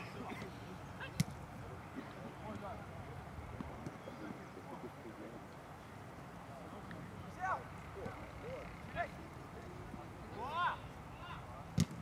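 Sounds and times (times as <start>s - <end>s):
players shouting: 7.2s - 11.7s
ball being kicked: 11.8s - 12.0s.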